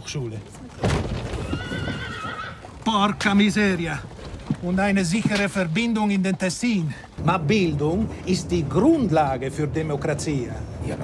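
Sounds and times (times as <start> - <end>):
horse whinnying: 1.2 - 3.2.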